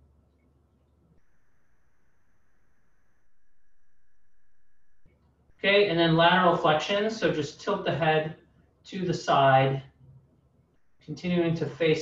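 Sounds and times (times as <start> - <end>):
low hiss: 1.1 - 10.1, 10.7 - 12.0
thin high whine: 1.2 - 9.9.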